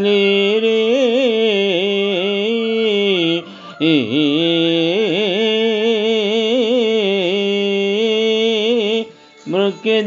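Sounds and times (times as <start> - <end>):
man singing melodically: 0.0 - 10.0.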